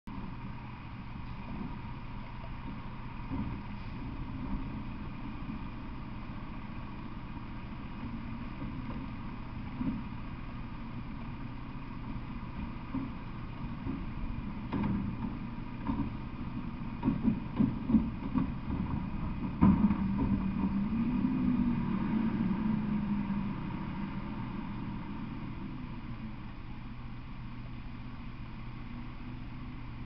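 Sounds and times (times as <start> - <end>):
truck engine idling: 0.1 - 30.0.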